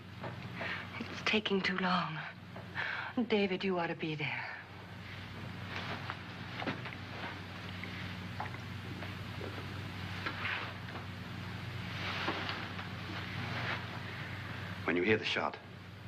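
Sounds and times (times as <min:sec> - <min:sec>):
film soundtrack hiss and hum: 0:00.0 - 0:16.0
soft rustling: 0:04.8 - 0:14.7.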